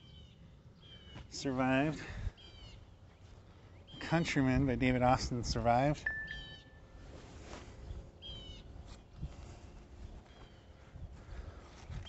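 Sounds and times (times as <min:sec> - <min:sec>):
bird whistle: 0:06.1 - 0:06.8
bird calling: 0:06.1 - 0:06.9.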